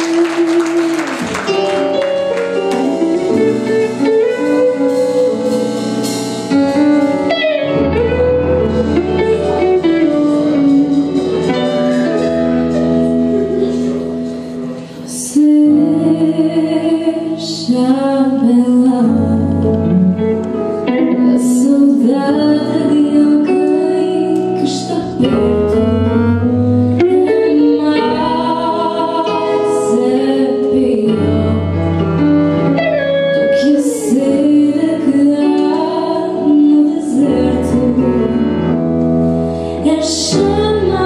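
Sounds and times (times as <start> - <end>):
live band playing: 0.0 - 41.0
woman singing into a microphone: 14.9 - 38.9, 39.6 - 41.0.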